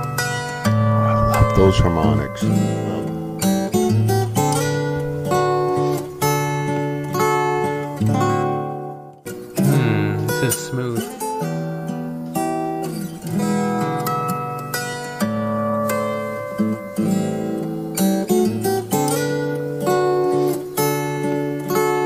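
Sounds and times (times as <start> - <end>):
fingerstyle acoustic guitar: 0.0 - 22.0.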